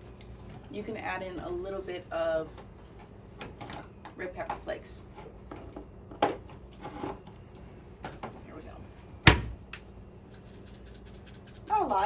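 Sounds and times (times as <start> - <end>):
cabinet door shutting: 9.2 - 9.6
spice jar shaken sprinkling flakes: 10.2 - 12.0.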